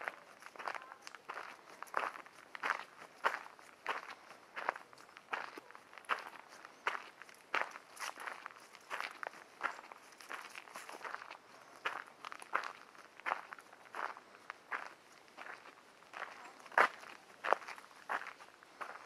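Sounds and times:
footsteps on dirt trail: 0.0 - 19.0.

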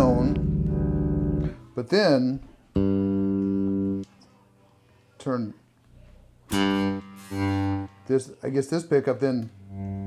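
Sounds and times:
plucked electric bass notes: 0.0 - 1.7, 2.8 - 4.1, 6.5 - 8.0, 9.6 - 10.0.

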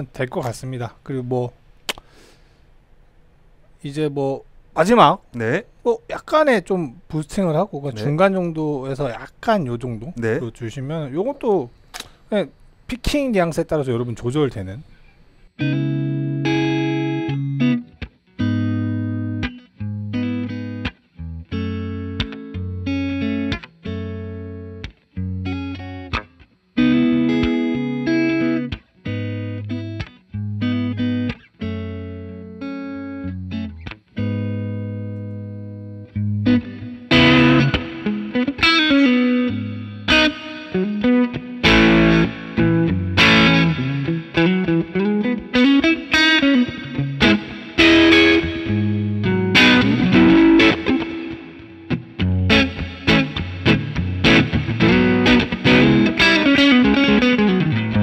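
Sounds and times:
electric guitar chords and picking: 15.6 - 58.0.

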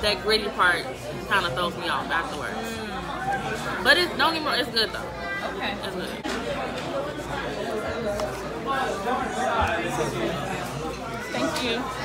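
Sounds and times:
chatter of voices: 0.0 - 12.0.

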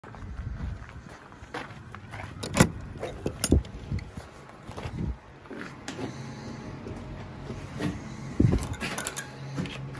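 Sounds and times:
wooden door opening: 2.4 - 2.8.

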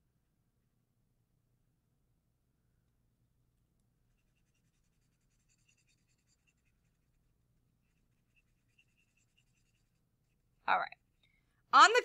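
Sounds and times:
marker scratching on paper: 4.1 - 10.5.

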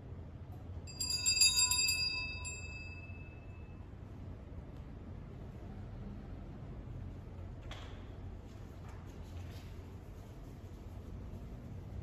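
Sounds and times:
small altar bells ringing: 0.9 - 3.9.

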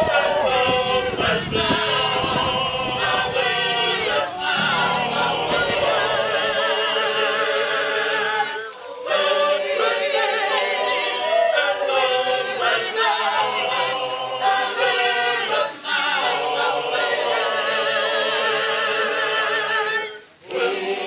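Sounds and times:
choir singing held notes: 0.0 - 21.0.

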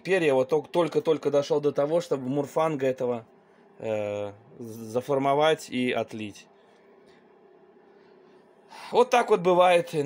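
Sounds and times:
man speaking: 0.0 - 6.5, 8.8 - 10.0
faint room hum: 0.0 - 10.0.

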